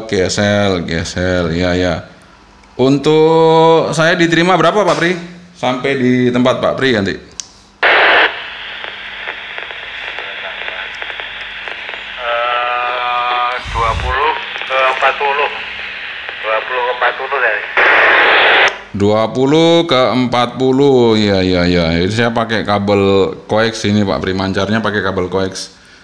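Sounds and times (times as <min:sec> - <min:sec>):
loud static burst: 0:07.8 - 0:18.7
steady radio hiss: 0:07.8 - 0:19.1
voice over radio loudspeaker: 0:09.6 - 0:18.7.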